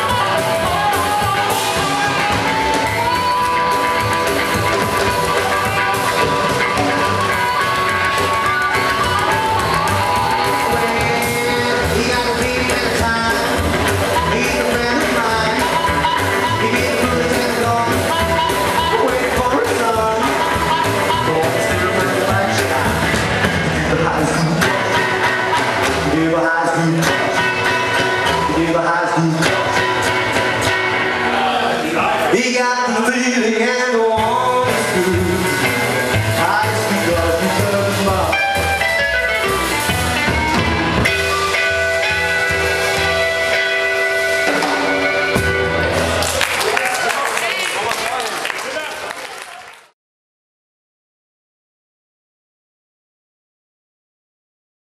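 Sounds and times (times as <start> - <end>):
harmonica held notes: 0.0 - 12.0
person singing: 0.0 - 30.4, 31.3 - 38.9
rockabilly band playing live: 0.0 - 49.5
audience applause: 0.7 - 12.0, 45.8 - 50.0.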